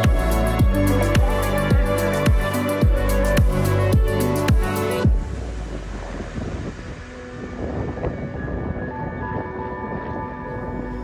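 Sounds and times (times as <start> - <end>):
soft sustained music tones: 0.0 - 11.0
wind on microphone: 0.0 - 11.0.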